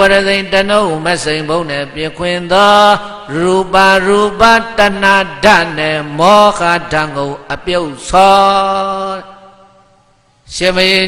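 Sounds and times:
man chanting: 0.0s - 9.9s, 10.5s - 11.0s.

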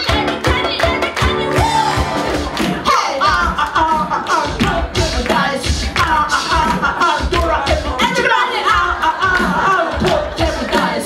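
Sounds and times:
small band playing pop music: 0.0s - 11.0s
steady percussion beat: 0.0s - 11.0s
women singing into microphones: 0.0s - 11.0s.

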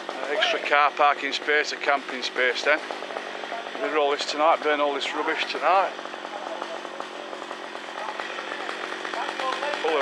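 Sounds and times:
small engine running with rattle: 0.0s - 10.0s.

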